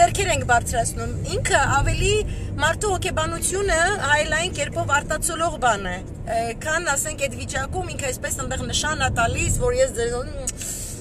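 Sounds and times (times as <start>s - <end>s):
woman talking: 0.0s - 10.8s
car rumble: 0.0s - 11.0s.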